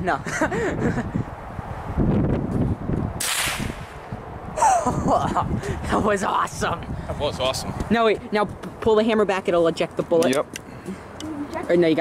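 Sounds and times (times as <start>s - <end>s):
rifle shot: 3.2s - 4.0s.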